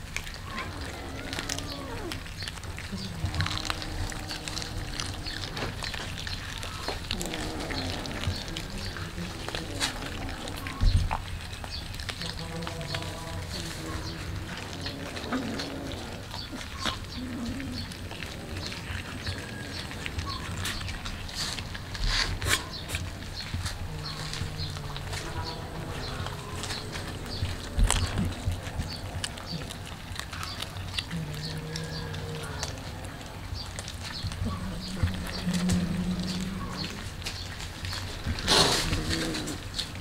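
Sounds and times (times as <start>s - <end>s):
cats chewing and crunching fish: 0.0s - 40.0s.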